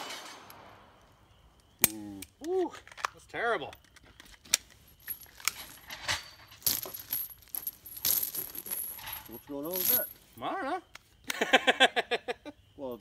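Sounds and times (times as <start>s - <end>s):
metallic clinking and rattling: 3.8s - 10.4s.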